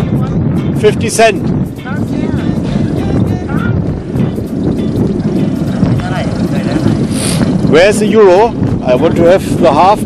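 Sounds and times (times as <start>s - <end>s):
wind buffeting microphone: 0.0s - 10.0s
faint voices: 1.9s - 9.7s.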